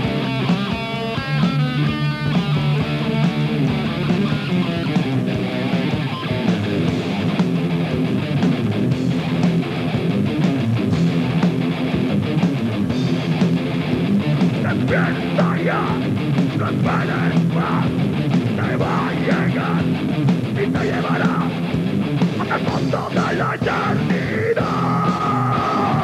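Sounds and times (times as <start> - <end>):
drum kit: 0.0 - 26.0
electric guitars riffing: 0.0 - 26.0.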